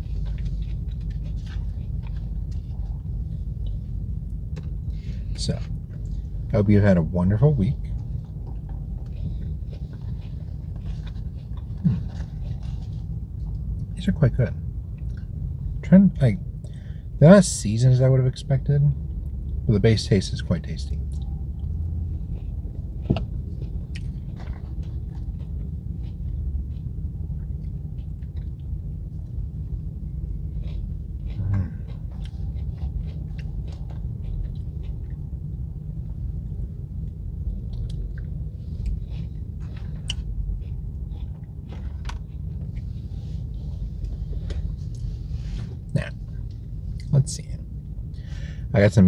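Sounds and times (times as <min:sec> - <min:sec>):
man chewing: 0:00.0 - 0:06.5, 0:07.8 - 0:14.0, 0:20.9 - 0:48.6
car interior rumble: 0:00.0 - 0:49.0.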